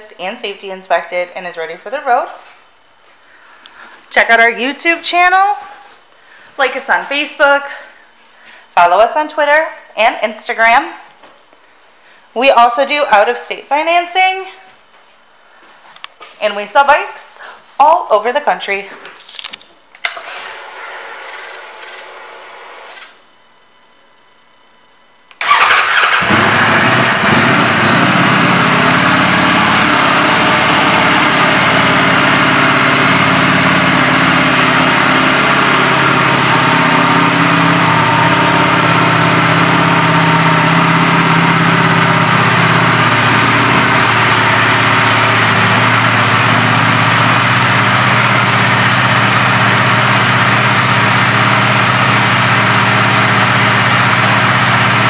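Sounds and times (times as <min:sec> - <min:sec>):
motorcycle engine starting and idling: 0:20.0 - 0:23.2, 0:25.3 - 0:55.0.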